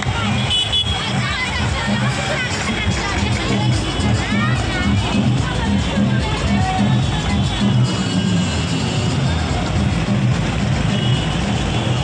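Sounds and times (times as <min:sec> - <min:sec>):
amplified music with pulsing bass: 0:00.0 - 0:11.7
auto-rickshaws and cars running: 0:00.0 - 0:12.0
crowd voices: 0:00.0 - 0:12.0.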